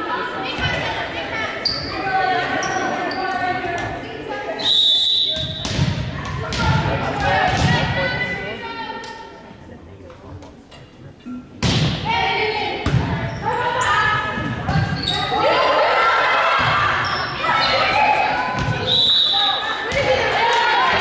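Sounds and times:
girls calling and shouting: 0.0 - 4.7, 12.0 - 21.0
volleyball hits: 5.3 - 8.0, 11.6 - 12.2, 12.8 - 13.4, 16.4 - 19.0, 19.8 - 21.0
cheering: 15.3 - 21.0.

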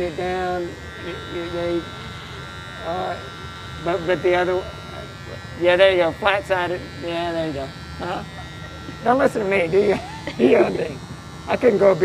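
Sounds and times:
electric hair clippers buzzing: 0.0 - 12.0.

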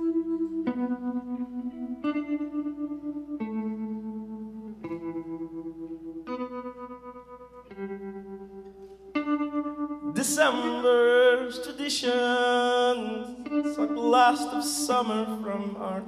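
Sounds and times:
electric guitar ringing notes: 0.0 - 16.0.

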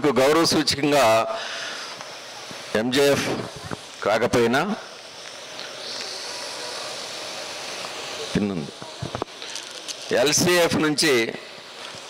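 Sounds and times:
steady high hiss: 0.0 - 12.0.

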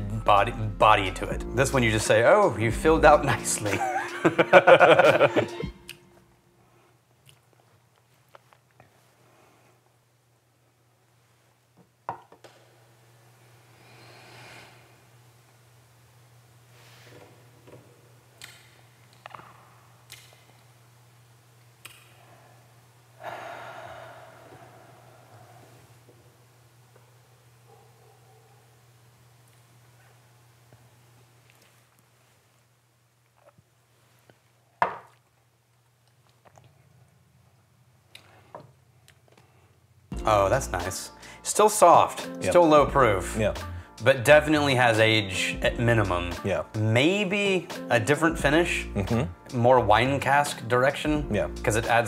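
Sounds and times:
person laughing: 3.2 - 5.7, 49.0 - 49.4
long exhaled sigh: 23.2 - 25.9
person breathing and mouth noises: 23.2 - 26.0.

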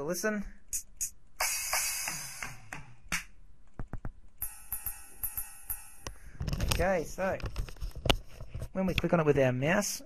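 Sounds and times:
ride cymbal strikes: 0.8 - 3.3, 4.4 - 6.2
drum hits: 1.4 - 5.9.

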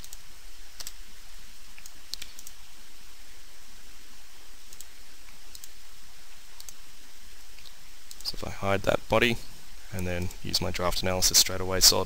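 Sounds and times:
computer mouse clicks: 0.0 - 0.2, 0.8 - 1.0, 1.8 - 2.6, 4.7 - 5.8, 6.5 - 6.8, 7.6 - 8.4
steady background hiss: 0.0 - 12.0.

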